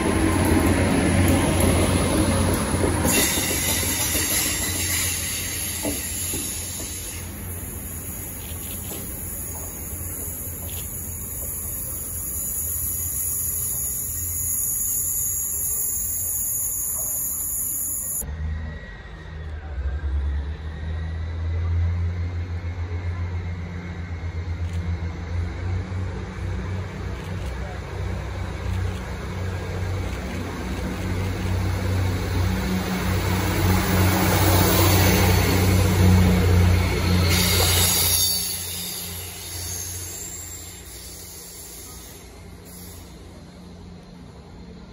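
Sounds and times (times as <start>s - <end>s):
diesel train passing: 0.0s - 44.9s.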